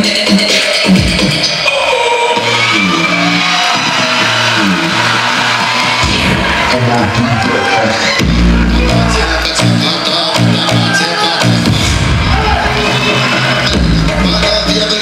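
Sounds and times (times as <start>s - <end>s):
electronic dance music: 0.0s - 15.0s
deep bass: 2.4s - 15.0s.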